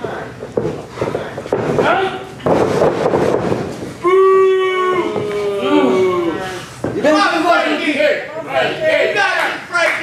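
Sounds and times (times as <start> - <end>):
people calling out and talking: 4.0 - 10.0.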